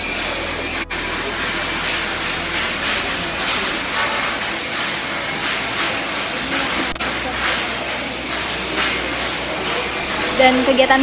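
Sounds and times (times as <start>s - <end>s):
steady hissing workshop din: 0.0s - 11.0s.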